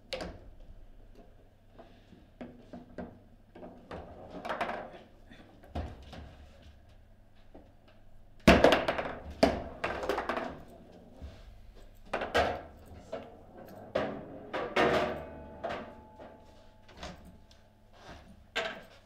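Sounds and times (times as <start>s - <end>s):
foosball rods knocking: 8.5s - 10.9s, 12.1s - 16.5s.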